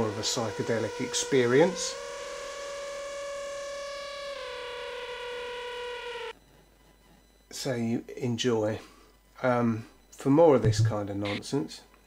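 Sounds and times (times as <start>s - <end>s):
sustained synthesizer tone: 0.0s - 6.4s.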